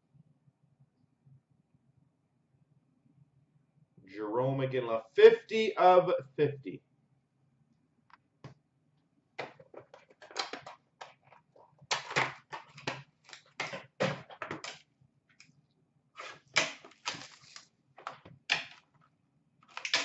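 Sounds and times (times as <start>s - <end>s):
cardboard and plastic wrap rustling: 16.2s - 18.2s.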